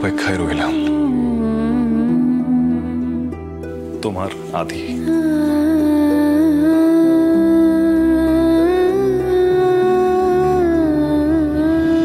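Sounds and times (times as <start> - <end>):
person humming slow melody: 0.0 - 3.6, 4.9 - 12.0
soft sustained chords: 0.0 - 12.0.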